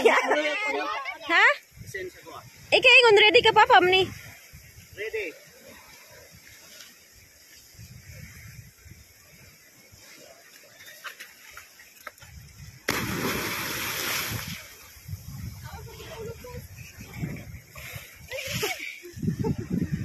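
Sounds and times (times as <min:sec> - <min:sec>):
sea: 0:00.0 - 0:20.0
wind: 0:00.0 - 0:20.0
loud splash into water: 0:12.8 - 0:14.9.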